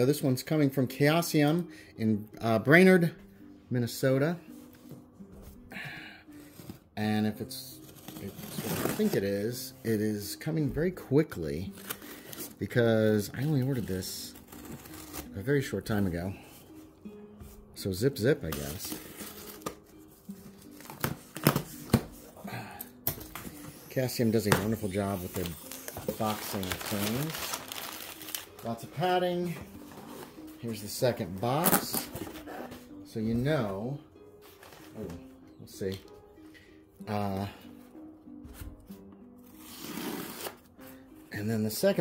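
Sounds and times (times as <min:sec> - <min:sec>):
quiet background music: 0:00.0 - 0:42.0
tape and cardboard crackling: 0:07.8 - 0:09.2, 0:11.6 - 0:15.5, 0:18.3 - 0:22.3, 0:23.0 - 0:32.9.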